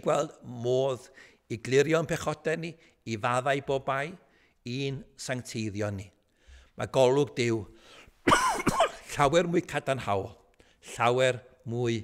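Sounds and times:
man speaking: 0.0 - 6.2, 6.8 - 7.8, 9.0 - 12.0
man coughing: 8.2 - 9.2.

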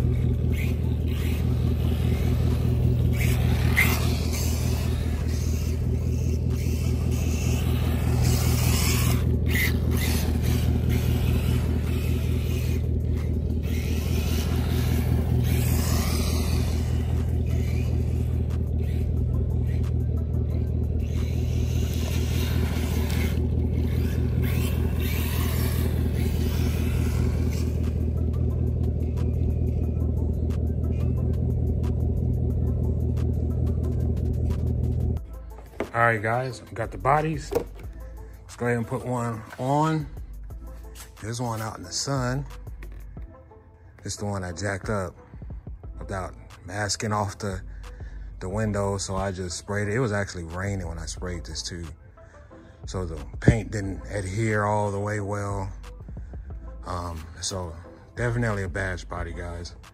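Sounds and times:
rc car electric motor whining: 0.0 - 36.0, 36.8 - 43.0
steady low hum: 0.0 - 59.9.

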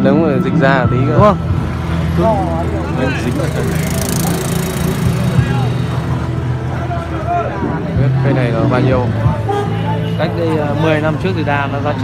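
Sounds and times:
faint voices talking: 0.0 - 12.0
motorbike idling: 1.8 - 7.4.

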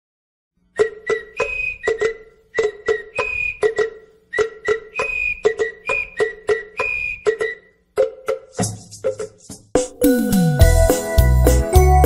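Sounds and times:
instrumental music with struck notes: 0.8 - 12.0.

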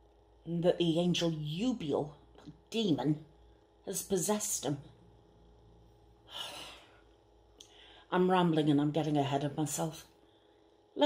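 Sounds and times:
woman breathing: 6.2 - 8.1, 10.2 - 10.9.

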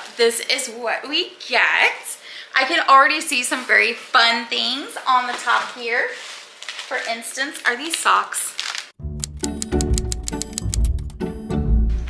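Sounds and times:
background music with steady beat: 9.0 - 12.0.

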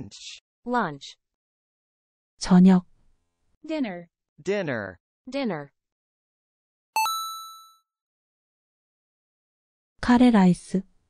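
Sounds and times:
bell-like ding: 7.0 - 7.8.

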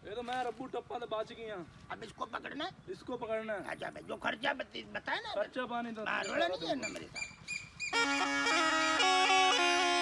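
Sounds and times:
reed pipe drone and melody: 7.9 - 10.0.

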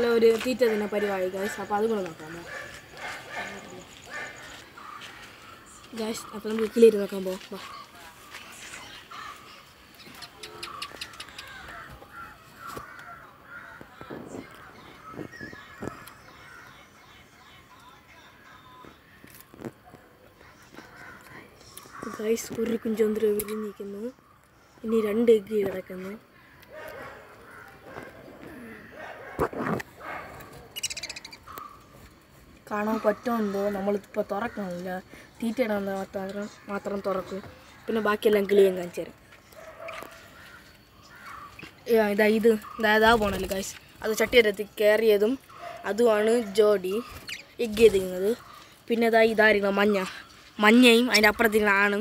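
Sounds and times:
birds calling: 0.0 - 52.0
dog barking: 2.4 - 4.6, 26.7 - 30.8, 39.6 - 40.3, 45.5 - 46.6.

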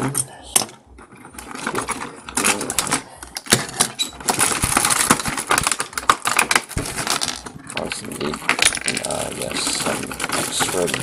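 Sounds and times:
plastic toy parts clattering: 0.0 - 11.0.

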